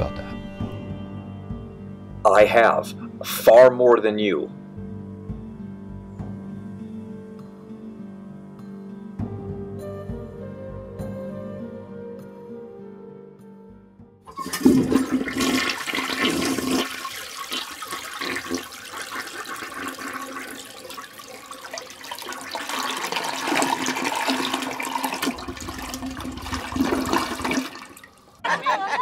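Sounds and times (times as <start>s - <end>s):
toilet flushing: 14.3s - 28.5s.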